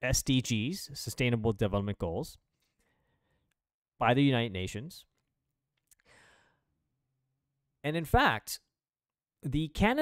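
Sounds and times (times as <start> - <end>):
faint short breath: 2.7 - 3.5, 6.0 - 6.7.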